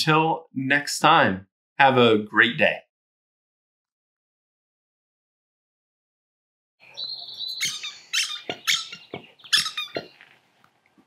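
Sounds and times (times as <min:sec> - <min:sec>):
bird squawking: 0:06.8 - 0:10.3.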